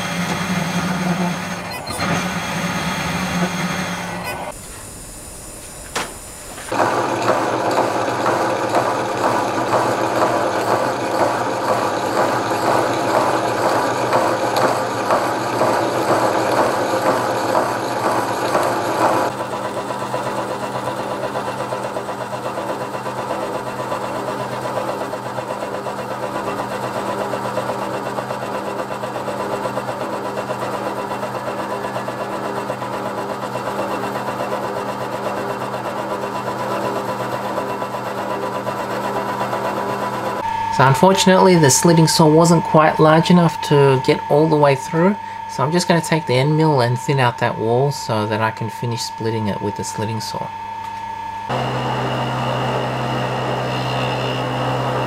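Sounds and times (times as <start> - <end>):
milling machine saw chatter: 0.0 - 55.0.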